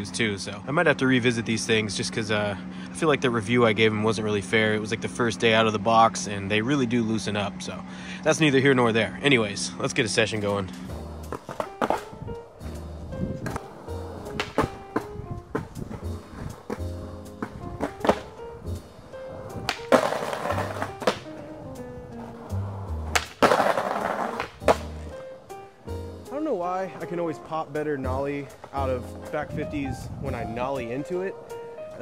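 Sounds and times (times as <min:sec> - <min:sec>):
skateboard trucks grinding on curb: 0:03.3 - 0:32.0
background music with bass line: 0:10.8 - 0:32.0
skateboard pops and landings: 0:14.3 - 0:16.0, 0:16.6 - 0:18.4, 0:19.7 - 0:21.3, 0:23.0 - 0:25.0.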